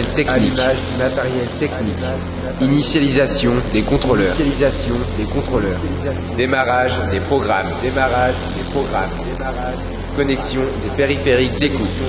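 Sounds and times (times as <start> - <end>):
low electronic hum: 0.0 - 12.0
person speaking announcement: 0.0 - 12.0.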